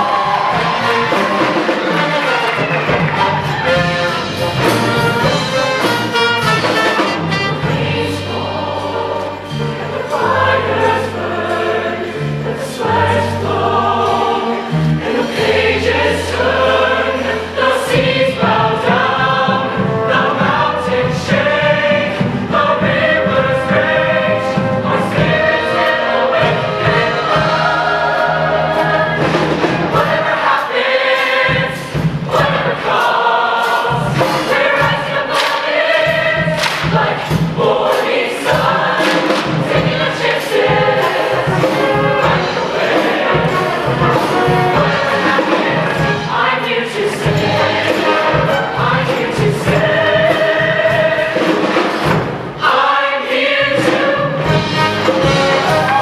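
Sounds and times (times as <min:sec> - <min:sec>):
choir singing: 0:00.0 - 0:56.0
steady drum beat: 0:00.0 - 0:56.0.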